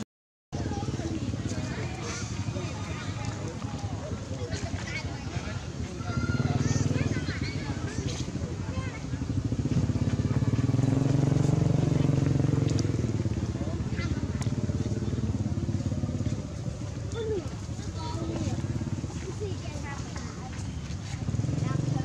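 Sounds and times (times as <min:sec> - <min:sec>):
small engine running: 0:00.6 - 0:19.6.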